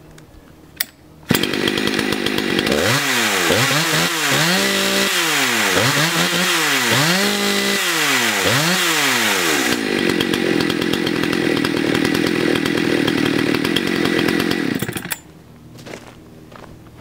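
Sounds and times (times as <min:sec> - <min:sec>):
chainsaw revving and idling: 0:01.3 - 0:15.2.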